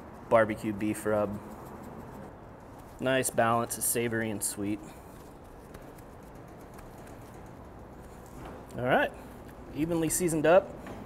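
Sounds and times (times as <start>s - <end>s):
spice rub pattering onto meat: 4.1s - 8.3s.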